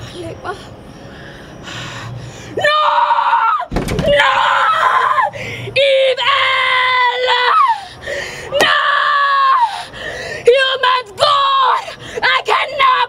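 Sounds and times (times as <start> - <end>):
woman screaming: 2.6 - 7.9, 8.5 - 9.9, 10.5 - 13.0.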